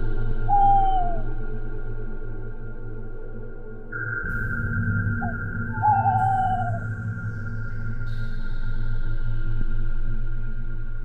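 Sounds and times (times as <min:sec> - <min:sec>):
eerie horror music drone: 0:00.0 - 0:11.0
long sliding hoot: 0:00.5 - 0:01.2, 0:05.2 - 0:06.8.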